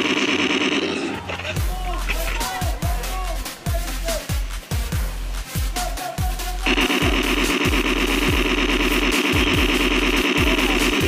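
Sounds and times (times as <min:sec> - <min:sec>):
electronic music with thumping beat: 0:01.3 - 0:11.0
fast-pulsing buzz: 0:06.6 - 0:11.0.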